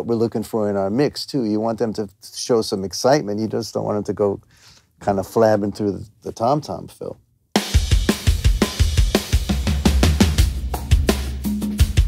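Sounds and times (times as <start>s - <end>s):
drum kit kick and snare hits: 7.6s - 12.0s.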